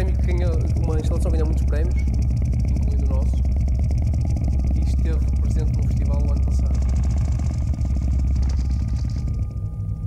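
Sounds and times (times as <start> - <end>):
deep rumbling drone: 0.0 - 10.0
dense crackle: 0.0 - 10.0.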